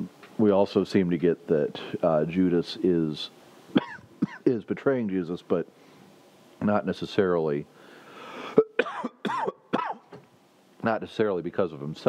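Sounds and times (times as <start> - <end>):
man coughing: 3.8 - 4.5, 8.4 - 10.1.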